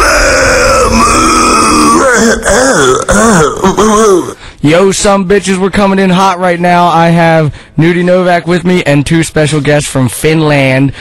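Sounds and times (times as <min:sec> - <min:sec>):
person making guttural vocal noise: 0:00.0 - 0:04.5.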